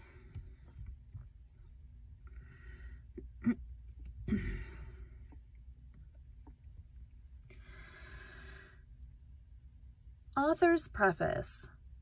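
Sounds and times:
faint low room hum: 0:00.0 - 0:12.0
breath close to microphone: 0:02.3 - 0:03.2, 0:07.5 - 0:08.9.

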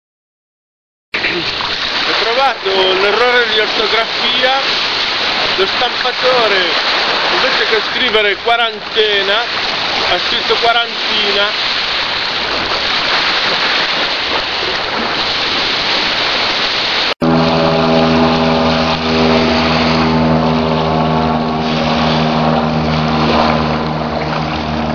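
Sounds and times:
small waves breaking on shore: 0:01.2 - 0:24.9
propeller aircraft engine drone: 0:01.5 - 0:10.4, 0:16.1 - 0:24.9.

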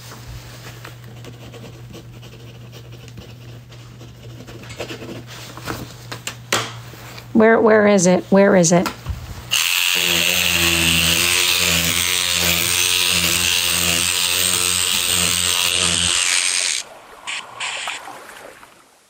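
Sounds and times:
small electric motor humming: 0:09.5 - 0:18.0.

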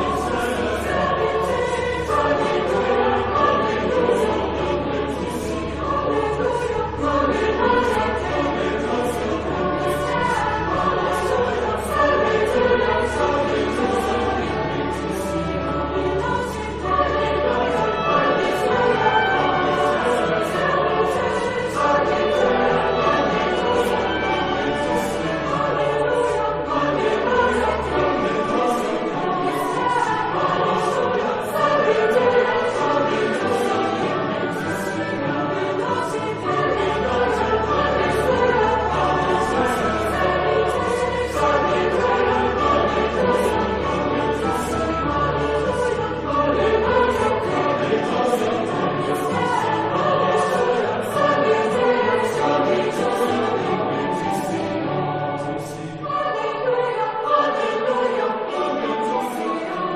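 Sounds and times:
choir singing: 0:00.0 - 0:59.9.

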